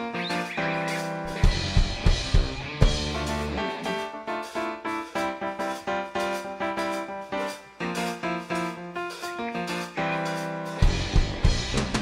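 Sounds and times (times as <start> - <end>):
electric guitar chords: 0.0 - 12.0
electric bass: 1.2 - 3.8, 10.8 - 12.0
heavy drum hits: 1.3 - 3.6, 10.8 - 12.0.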